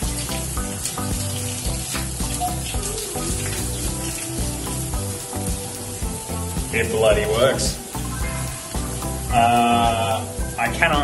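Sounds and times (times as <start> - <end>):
background music with beat: 0.0 - 11.0
shower running: 0.0 - 11.0.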